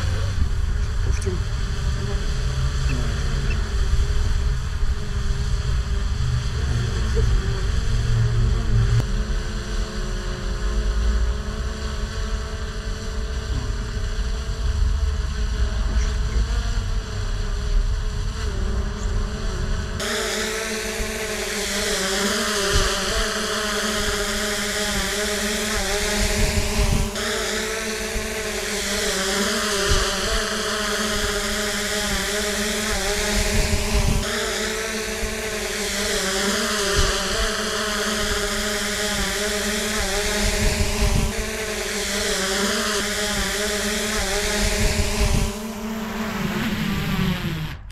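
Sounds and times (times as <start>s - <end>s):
wind rumble on microphone: 0.0s - 9.5s, 33.0s - 34.3s, 44.2s - 47.9s
drone buzzing in flight: 0.0s - 47.9s.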